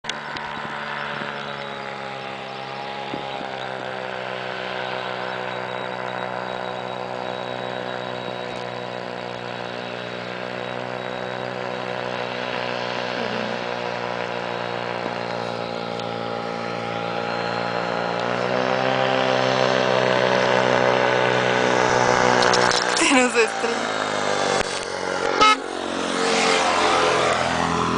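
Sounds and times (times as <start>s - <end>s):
ultralight aircraft engine and propeller: 0.0s - 27.9s.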